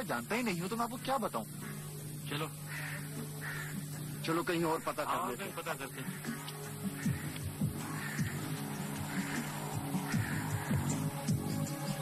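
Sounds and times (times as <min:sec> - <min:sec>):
crow cawing: 0:01.4 - 0:11.5.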